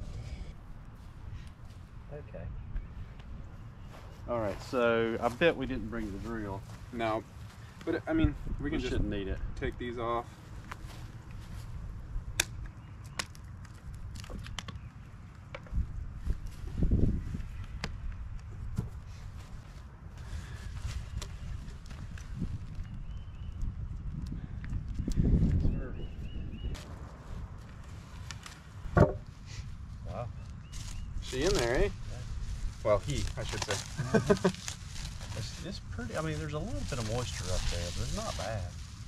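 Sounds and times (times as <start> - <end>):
wind rumble on microphone: 8.0 - 12.9, 13.8 - 39.0
heavy thumps: 28.9 - 29.3.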